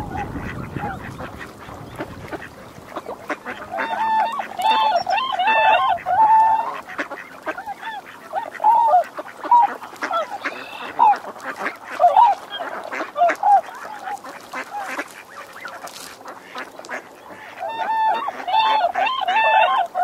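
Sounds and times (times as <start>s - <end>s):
swans honking: 0.0s - 20.0s.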